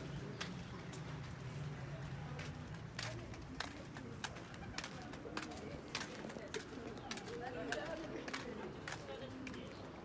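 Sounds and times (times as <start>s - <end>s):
flip-flops slapping on concrete: 2.3s - 9.7s.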